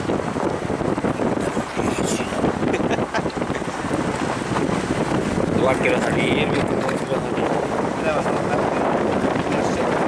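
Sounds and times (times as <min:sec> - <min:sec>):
vehicle rumbling on dirt road: 0:00.0 - 0:10.0
wind on microphone: 0:00.0 - 0:10.0.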